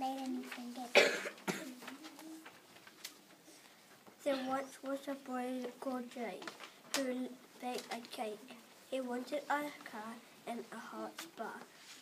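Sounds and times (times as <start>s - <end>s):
person coughing: 0.9s - 1.8s, 4.3s - 4.6s.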